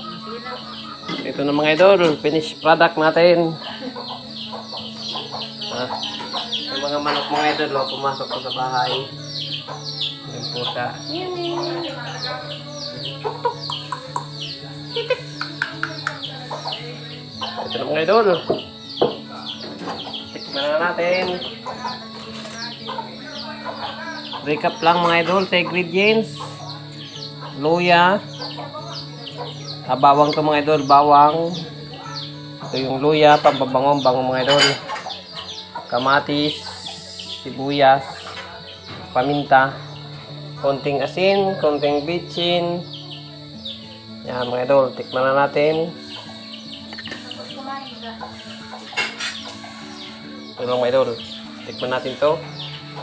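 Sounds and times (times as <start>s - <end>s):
chickens clucking: 0.0s - 53.0s
soft background music: 0.0s - 53.0s
metal spoon scraping ceramic plate: 48.8s - 49.6s.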